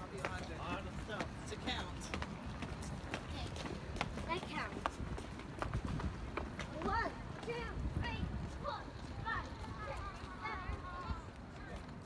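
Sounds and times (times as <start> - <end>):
footsteps on stone paving: 0.0 - 12.0
people's voices: 0.0 - 12.0.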